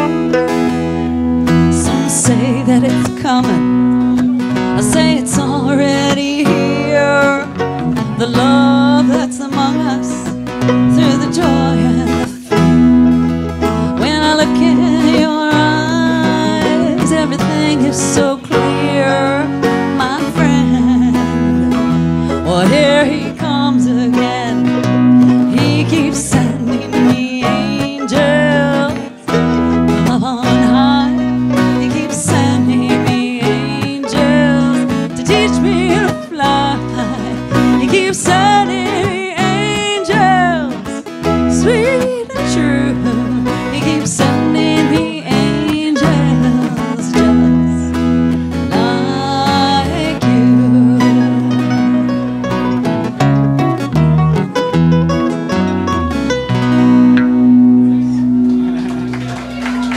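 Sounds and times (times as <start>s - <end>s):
electric bass: 0.0s - 59.9s
mandolin: 0.0s - 59.9s
strummed acoustic guitar: 0.0s - 59.9s
wavering lead melody: 0.0s - 59.9s.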